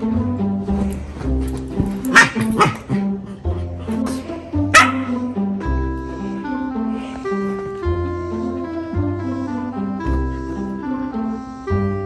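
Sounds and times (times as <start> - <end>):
music with plucked strings: 0.0 - 12.0
dog barking: 2.1 - 3.0, 4.7 - 5.3.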